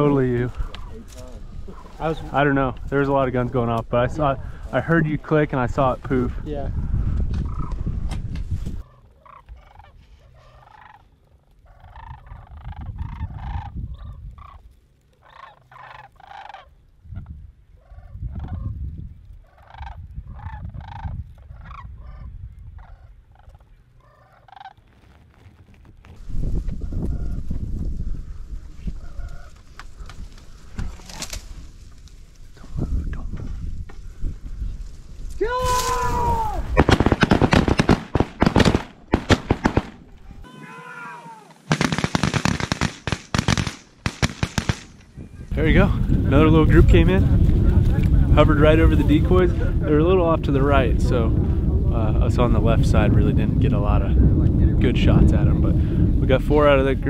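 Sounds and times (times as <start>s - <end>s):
wind rumbling on microphone: 0.0s - 15.0s, 15.6s - 40.5s, 44.8s - 57.0s
cranes calling: 7.4s - 7.8s, 8.8s - 16.8s, 19.4s - 24.9s.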